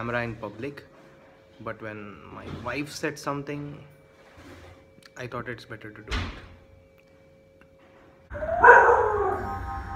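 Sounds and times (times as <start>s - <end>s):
loud cry-like sound rising in pitch: 8.3s - 9.9s.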